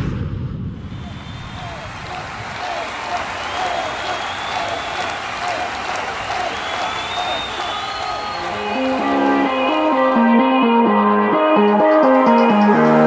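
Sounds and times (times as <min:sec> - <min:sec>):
crowd clapping and cheering: 0:00.9 - 0:11.7.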